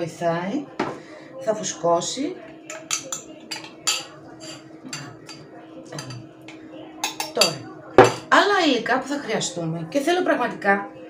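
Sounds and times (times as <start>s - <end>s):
spoon clinking against glass: 2.7s - 6.2s, 7.0s - 8.3s.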